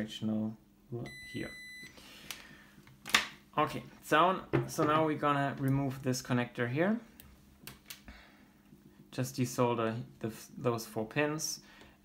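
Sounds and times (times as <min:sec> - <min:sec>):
multimeter continuity beep: 0:01.0 - 0:01.9.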